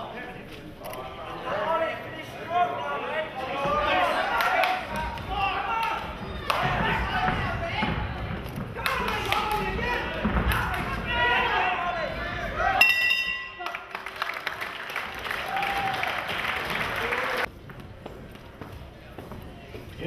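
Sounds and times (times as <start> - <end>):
boxing ring bell: 12.8 - 13.6.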